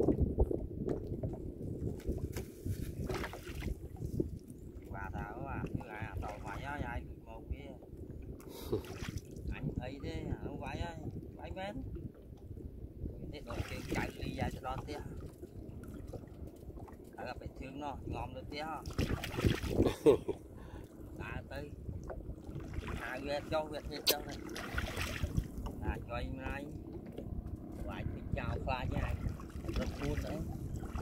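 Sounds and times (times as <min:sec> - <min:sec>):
water lapping against boat hull: 0:00.0 - 0:31.0
wind on microphone: 0:00.0 - 0:31.0
short water splash: 0:02.0 - 0:04.2, 0:08.5 - 0:09.5, 0:13.4 - 0:14.3, 0:18.8 - 0:20.0, 0:22.5 - 0:25.7, 0:28.9 - 0:31.0.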